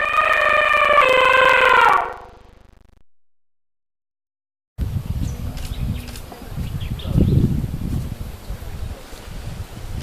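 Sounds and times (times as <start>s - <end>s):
loud sustained pitched tone: 0.0s - 2.8s.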